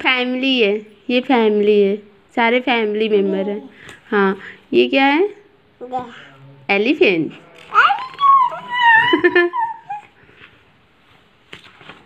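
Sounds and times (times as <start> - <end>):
toddler squealing: 7.8 - 10.1.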